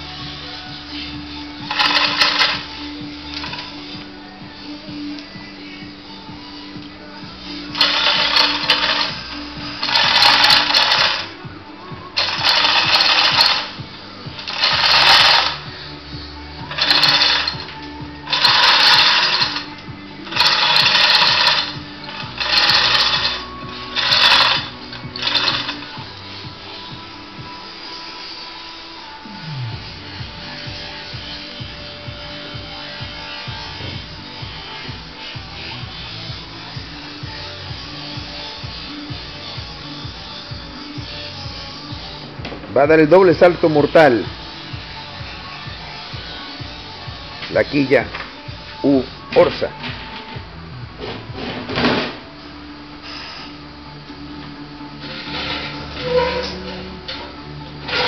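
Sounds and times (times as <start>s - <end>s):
chain hoist ratchet clatter: 1.7s - 2.7s, 7.8s - 11.3s, 12.2s - 13.8s, 14.4s - 15.6s, 16.7s - 17.7s, 18.3s - 26.0s.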